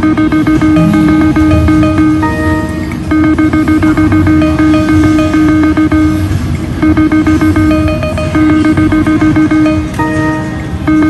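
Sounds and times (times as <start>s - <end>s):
rapid short electronic beeps: 0.0s - 11.0s
low hum: 0.1s - 6.6s.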